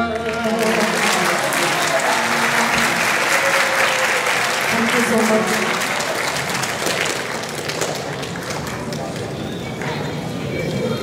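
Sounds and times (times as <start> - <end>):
audience applause: 0.2 - 10.6
crowd murmur: 0.4 - 11.0.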